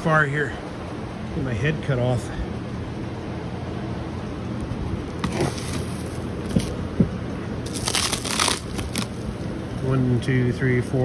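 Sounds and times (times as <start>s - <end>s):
crunching crackling scrapes: 5.1s - 6.8s, 7.6s - 9.3s.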